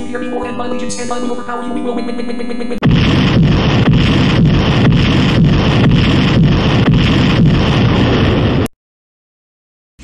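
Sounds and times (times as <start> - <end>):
looped explosion rumble: 2.8 - 8.7.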